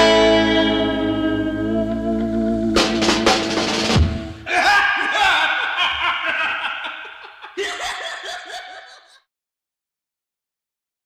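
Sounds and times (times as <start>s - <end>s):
people laughing: 4.5s - 9.2s.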